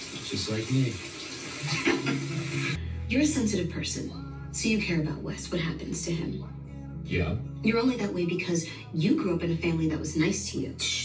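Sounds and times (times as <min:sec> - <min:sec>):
low voice: 0:00.0 - 0:01.0, 0:07.1 - 0:07.4
shower water running: 0:00.0 - 0:02.8.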